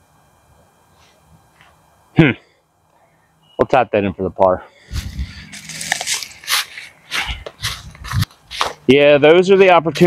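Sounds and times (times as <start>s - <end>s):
footsteps crunching dry leaves: 4.8s - 8.9s.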